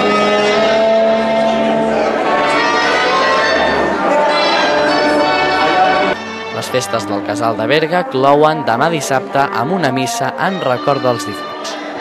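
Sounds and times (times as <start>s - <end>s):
wind band folk music: 0.0s - 12.0s.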